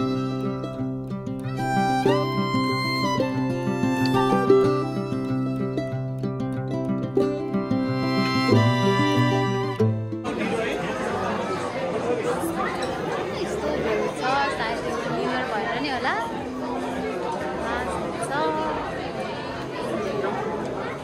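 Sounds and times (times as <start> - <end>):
hubbub of overlapping voices: 0.0 - 21.0.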